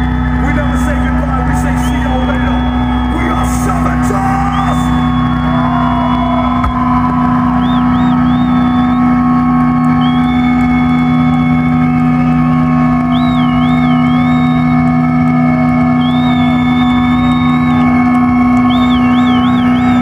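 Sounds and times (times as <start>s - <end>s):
electric guitars droning chord: 0.0s - 20.0s
guitar feedback squeals: 0.0s - 20.0s.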